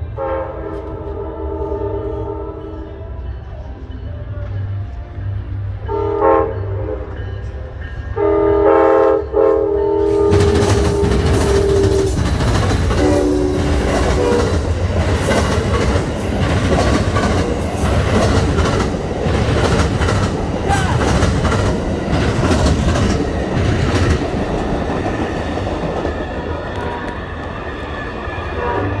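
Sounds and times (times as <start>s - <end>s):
train horn blasts: 0.0s - 3.0s, 5.8s - 7.3s, 8.1s - 12.2s, 12.9s - 14.7s, 28.5s - 29.0s
train passing with rumble: 0.0s - 29.0s
train wheels banging on rails: 10.0s - 27.6s.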